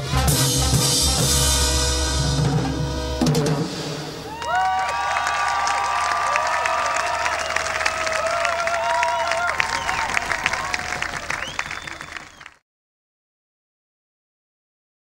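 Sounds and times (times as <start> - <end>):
crowd shouts and whoops: 4.3 - 12.2
audience clapping: 4.3 - 12.6.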